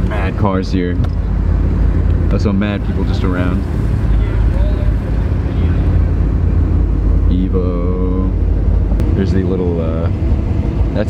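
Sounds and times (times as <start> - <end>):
car engine rumble in cabin: 0.0 - 11.0.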